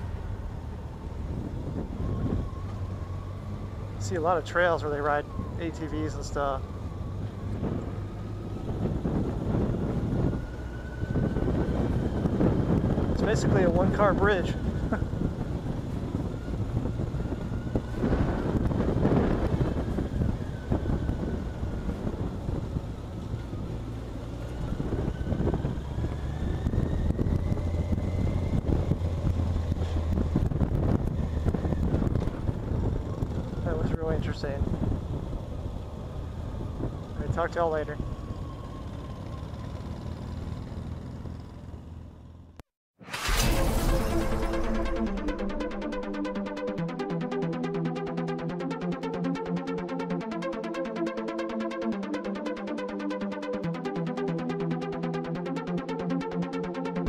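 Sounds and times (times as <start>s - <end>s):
motorcycle engine and road rumble: 0.0s - 57.0s
wind noise on microphone: 1.2s - 2.7s, 6.9s - 23.9s, 24.5s - 38.4s
motorcycle engine running: 21.6s - 42.6s.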